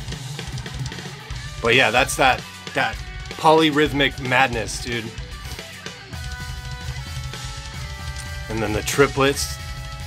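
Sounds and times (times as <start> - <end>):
busy drum kit: 0.0 - 10.0
electric guitar chords: 0.0 - 10.0.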